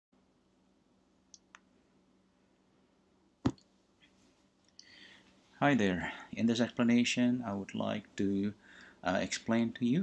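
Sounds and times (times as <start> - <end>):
faint low hum: 0.2 - 10.0.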